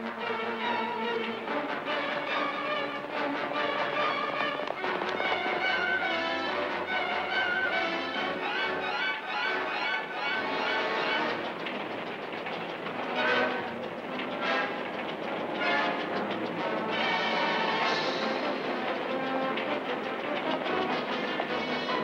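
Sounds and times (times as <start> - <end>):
orchestral film music: 0.0 - 22.0
train wheels clattering on rails: 0.0 - 22.0.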